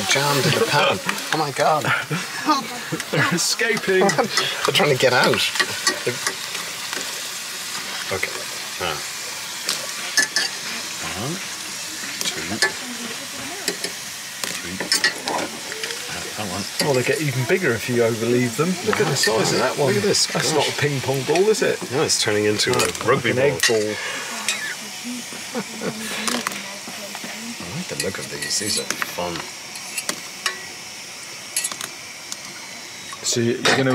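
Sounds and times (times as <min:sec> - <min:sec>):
hot oil sizzling: 0:00.0 - 0:33.9
faint voices: 0:10.5 - 0:29.5.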